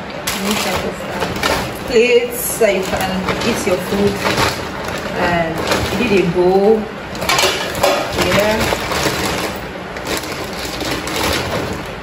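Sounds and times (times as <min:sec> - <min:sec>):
plastic bags rustling: 0:00.2 - 0:12.0.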